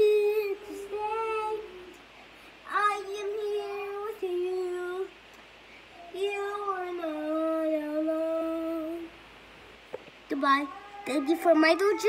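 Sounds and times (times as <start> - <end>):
boy singing long notes: 0.0 - 2.0, 2.7 - 5.1, 6.0 - 9.1.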